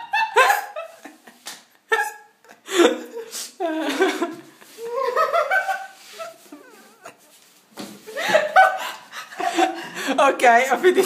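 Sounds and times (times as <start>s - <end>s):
woman laughing: 0.0s - 7.4s.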